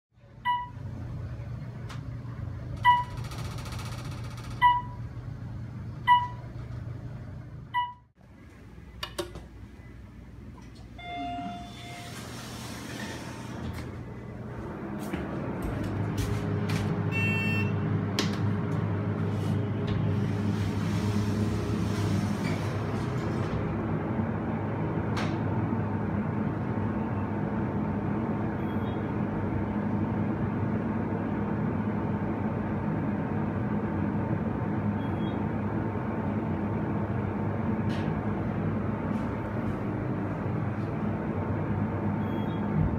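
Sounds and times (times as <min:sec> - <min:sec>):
short electronic beeps: 0:17.1 - 0:17.8, 0:28.6 - 0:29.0, 0:42.2 - 0:42.7.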